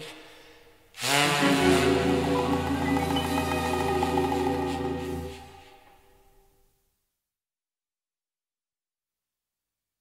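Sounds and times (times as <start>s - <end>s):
orchestral pop song accompaniment: 1.1s - 5.8s.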